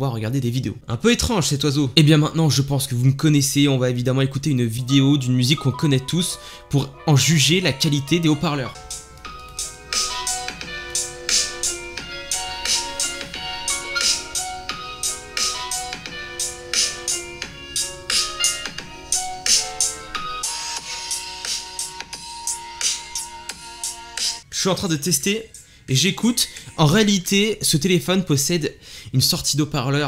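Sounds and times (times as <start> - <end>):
instrumental music from phone speaker: 4.9 - 24.5.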